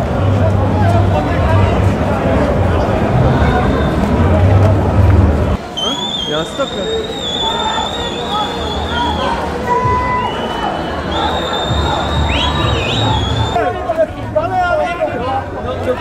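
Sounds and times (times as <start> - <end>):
crowd chatter: 0.0 - 16.0
whistles blowing high blasts: 5.6 - 13.6.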